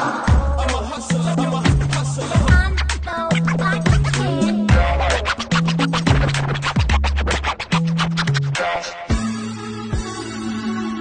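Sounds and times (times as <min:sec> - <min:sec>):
dj scratching: 0:00.0 - 0:09.0
bass-heavy beat: 0:00.0 - 0:10.9.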